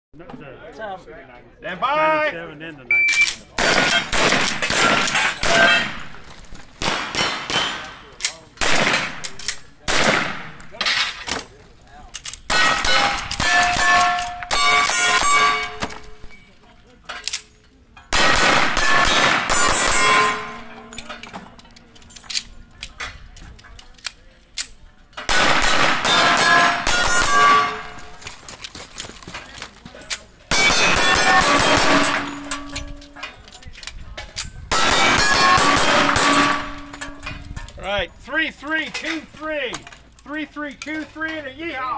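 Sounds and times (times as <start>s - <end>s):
rapid gunshots: 3.6s - 6.0s, 6.8s - 7.9s, 8.6s - 9.2s, 9.9s - 10.6s, 18.2s - 20.5s, 25.3s - 27.7s
steel plates ringing: 12.5s - 16.5s, 18.8s - 21.4s, 26.1s - 28.2s, 30.5s - 33.4s, 34.7s - 37.4s.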